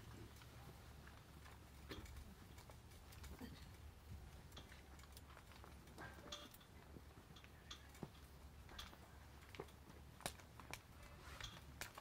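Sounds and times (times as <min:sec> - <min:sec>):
small clicks and taps: 0:07.3 - 0:12.0.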